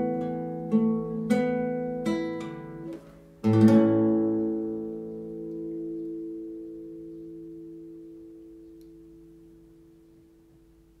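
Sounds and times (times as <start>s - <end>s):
classical guitar chord ringing: 0.0s - 10.3s.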